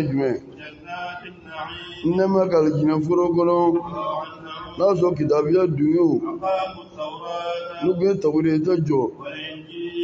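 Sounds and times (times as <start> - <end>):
man chanting into a microphone: 0.0 - 10.0.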